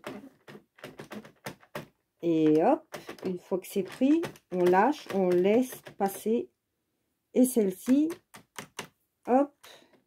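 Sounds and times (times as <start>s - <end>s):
knitting machine needles clicking: 0.0s - 6.3s, 7.7s - 8.9s.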